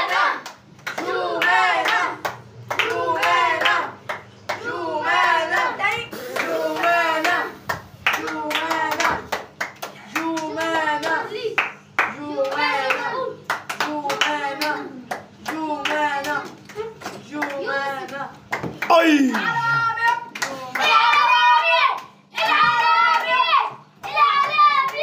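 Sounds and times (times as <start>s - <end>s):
children chanting: 0.0s - 9.2s, 12.2s - 13.5s, 18.9s - 25.0s
children clapping in rhythm: 0.0s - 19.4s, 20.0s - 25.0s.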